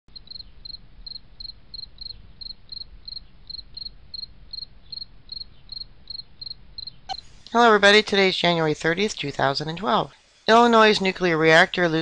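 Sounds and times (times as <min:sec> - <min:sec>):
cricket chirping: 0:00.1 - 0:07.3
faint low hum: 0:00.1 - 0:12.0.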